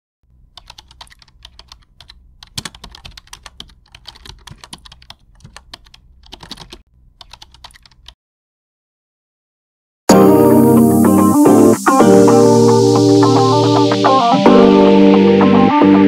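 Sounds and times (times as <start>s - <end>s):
keyboard typing clicks: 0.5s - 8.2s.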